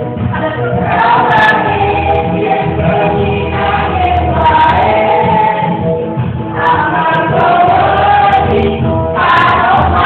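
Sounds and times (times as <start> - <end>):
group of voices singing: 0.3 - 10.0.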